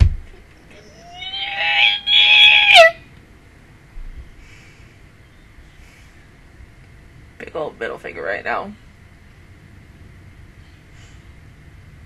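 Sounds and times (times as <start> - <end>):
woman squealing excitedly: 1.0 - 3.0.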